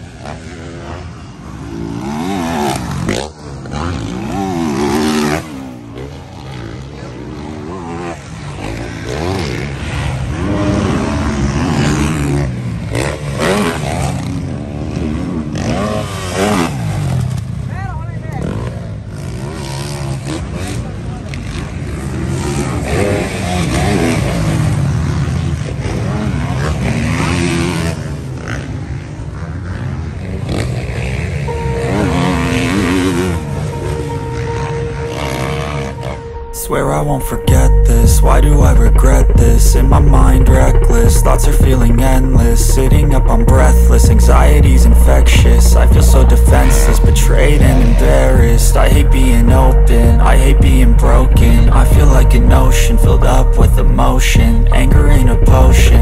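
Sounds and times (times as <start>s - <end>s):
motocross engines revving: 0.0s - 56.0s.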